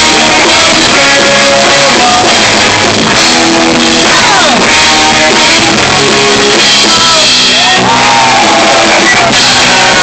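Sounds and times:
drums: 0:00.0 - 0:10.0
electric guitars: 0:00.0 - 0:10.0
shouted sung vocals: 0:06.8 - 0:10.0.

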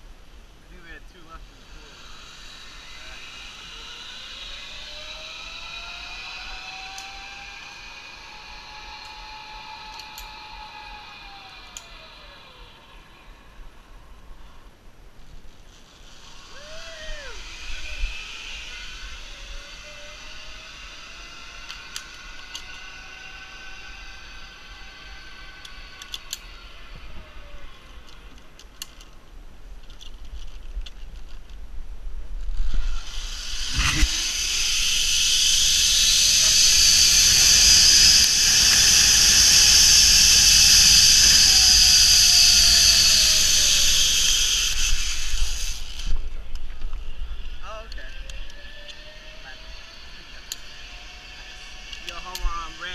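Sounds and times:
zip-line pulley hiss and whine: 0:00.0 - 0:29.2, 0:32.4 - 0:52.9
faint cable whine: 0:00.0 - 0:52.9.

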